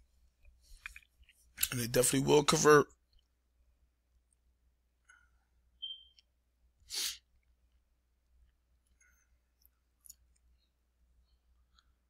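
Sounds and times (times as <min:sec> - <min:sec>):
man exhaling sharply: 0:06.9 - 0:07.2.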